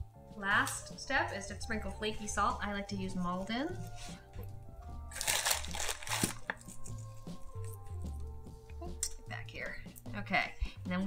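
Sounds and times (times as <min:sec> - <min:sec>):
background music with bass: 0:00.0 - 0:11.0.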